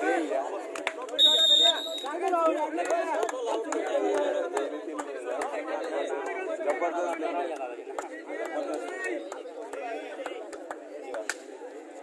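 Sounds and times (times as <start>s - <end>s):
crowd chatter and shouting: 0.0s - 12.0s
referee's whistle blast: 1.2s - 2.2s.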